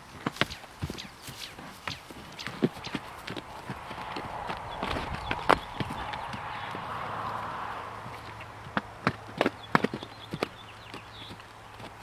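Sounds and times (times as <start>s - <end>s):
horse hooves on dirt and rock: 0.0s - 12.0s.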